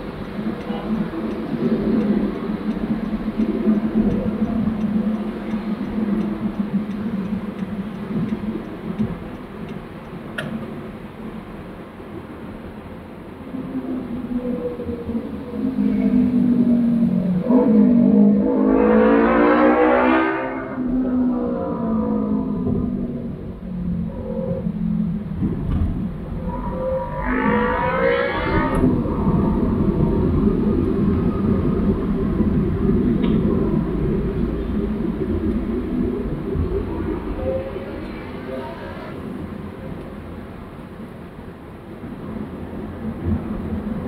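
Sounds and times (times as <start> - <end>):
steady engine hum: 0.0 - 44.0
engine rising and falling in pitch: 14.2 - 39.8.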